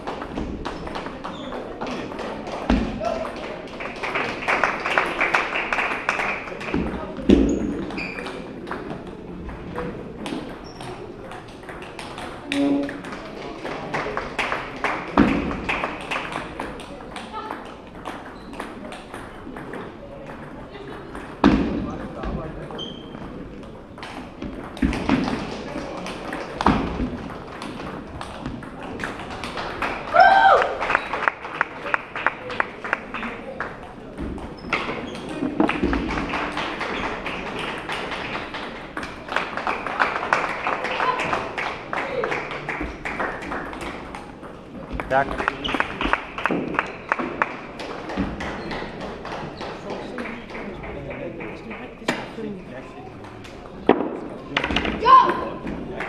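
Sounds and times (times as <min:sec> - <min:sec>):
chatter: 0:00.0 - 0:56.0.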